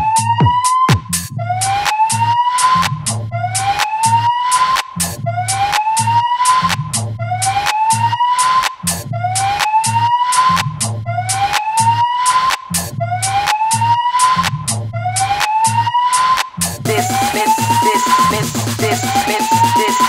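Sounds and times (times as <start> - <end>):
electronic dance music: 0.0 - 20.0.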